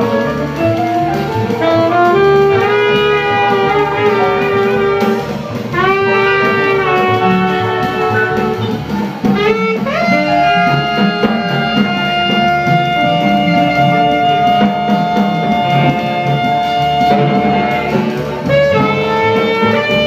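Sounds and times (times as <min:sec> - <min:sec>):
double bass: 0:00.0 - 0:20.0
drums: 0:00.0 - 0:20.0
saxophones playing slow melody: 0:00.0 - 0:20.0.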